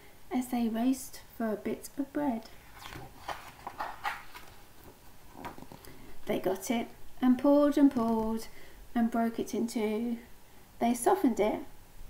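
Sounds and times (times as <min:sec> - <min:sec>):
page turning paper rustle: 0:02.6 - 0:05.9.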